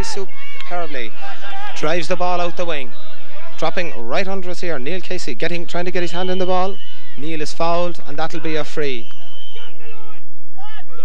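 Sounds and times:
referee's whistle: 5.8s - 7.9s, 8.5s - 11.0s
distant shouts of players: 5.9s - 7.8s, 8.4s - 11.0s.

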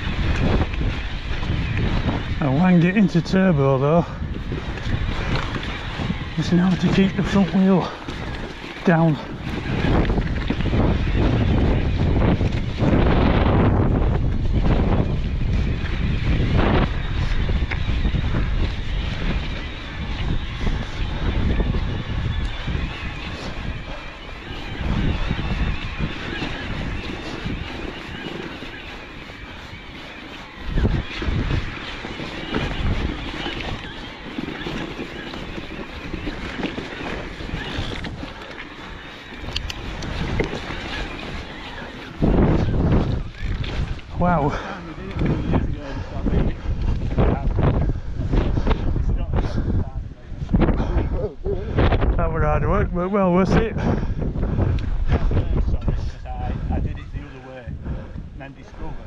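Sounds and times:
bike tyres rolling and rattling: 0.0s - 49.9s
wind buffeting microphone: 0.0s - 59.0s.

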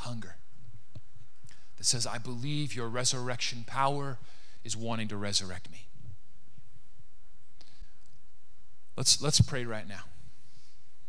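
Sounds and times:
faint breath: 4.2s - 4.7s.

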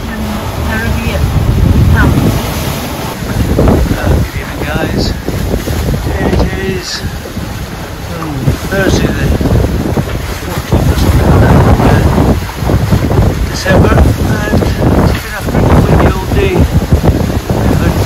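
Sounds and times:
waves rushing along hulls: 0.0s - 18.0s
wind buffeting microphone: 0.0s - 18.0s.

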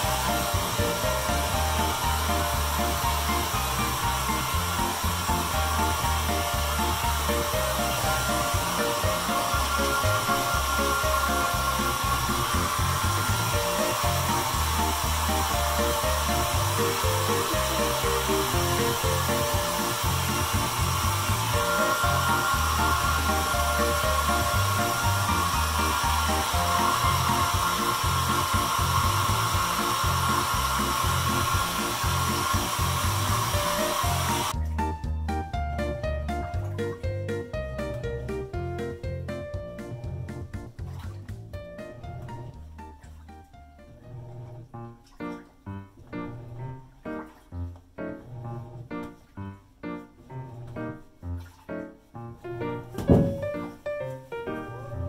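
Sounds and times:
hair dryer running: 0.0s - 34.6s
background music: 0.0s - 55.0s.

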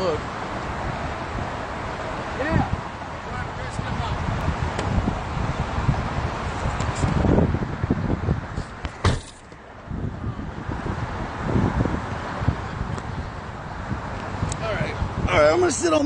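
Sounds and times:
highway traffic rumble: 0.0s - 16.0s
wind buffeting microphone: 0.0s - 16.0s
sharp handling knock: 8.9s - 9.6s.

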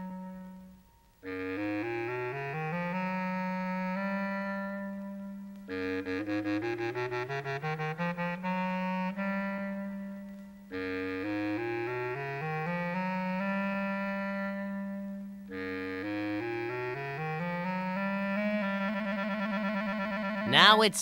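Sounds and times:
woodwind melody: 0.0s - 21.0s.

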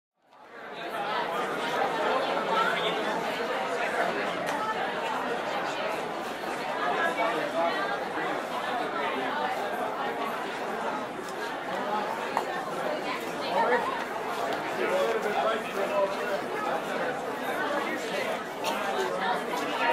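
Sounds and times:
chatter of many voices: 0.2s - 19.9s.

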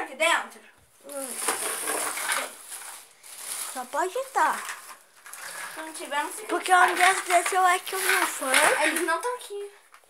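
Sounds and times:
rustling clattering handling noise: 1.1s - 10.0s.

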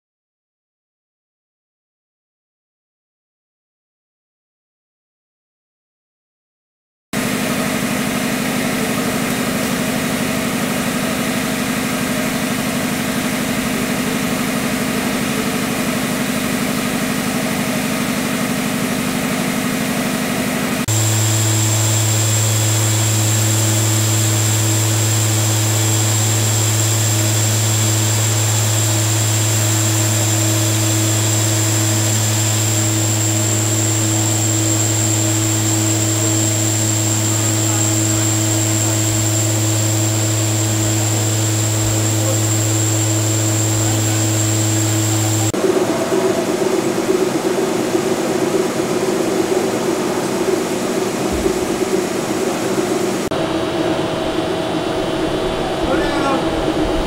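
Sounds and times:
deep hum with high whine: 7.2s - 57.0s
steam turbine running: 7.2s - 57.0s.

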